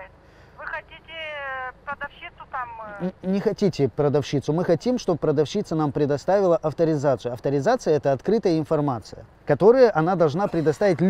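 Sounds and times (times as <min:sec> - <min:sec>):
woman's voice over speakerphone: 0:00.0 - 0:03.1.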